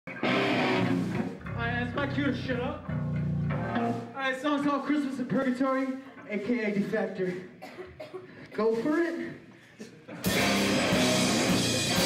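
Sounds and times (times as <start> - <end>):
electric guitar through amplifier: 0.1 - 4.1, 10.2 - 12.0.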